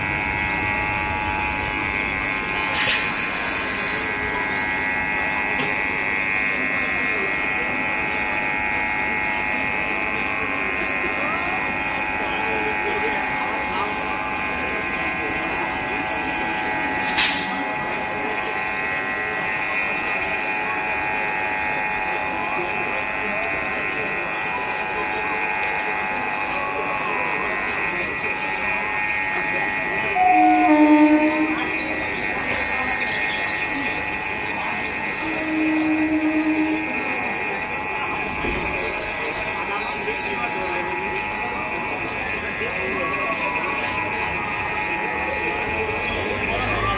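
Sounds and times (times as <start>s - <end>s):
train equipment whine: 0.0s - 46.9s
short low train horn blasts: 30.1s - 31.7s, 35.0s - 37.2s.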